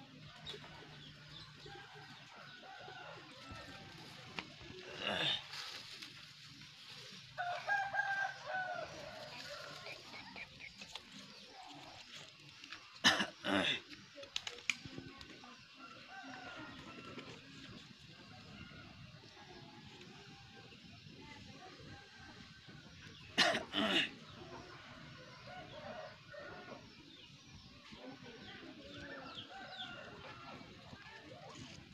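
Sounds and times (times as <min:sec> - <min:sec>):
rooster crowing: 0:07.4 - 0:10.0.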